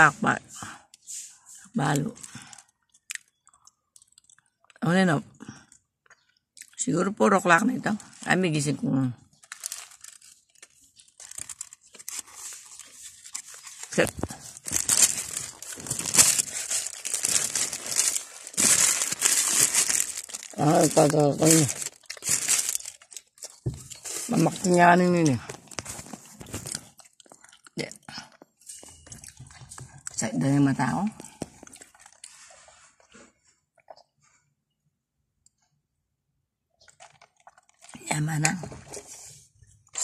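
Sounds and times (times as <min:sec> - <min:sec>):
crinkling and rustling: 0:07.8 - 0:34.4, 0:36.8 - 0:40.0.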